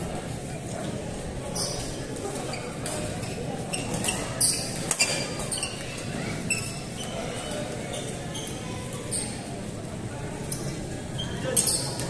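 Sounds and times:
murmur of large hall: 0.0s - 12.0s
shoes squeaking on court floor: 1.5s - 9.5s, 10.5s - 12.0s.

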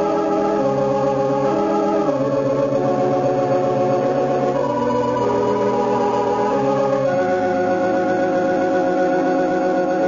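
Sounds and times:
organ playing sustained chords: 0.0s - 10.0s.

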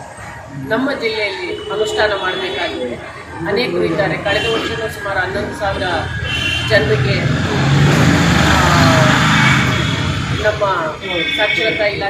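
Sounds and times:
vehicle passing by: 6.7s - 10.6s.

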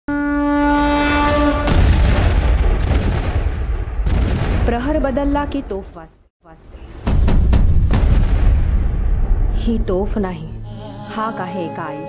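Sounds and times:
held horn note: 0.1s - 1.8s
deep rumbling boom: 1.7s - 5.6s, 7.0s - 10.7s.

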